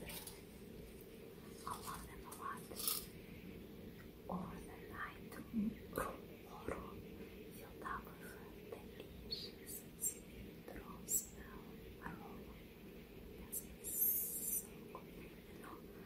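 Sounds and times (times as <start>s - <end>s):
woman whispering: 1.6s - 2.9s, 4.3s - 12.7s, 13.4s - 16.0s.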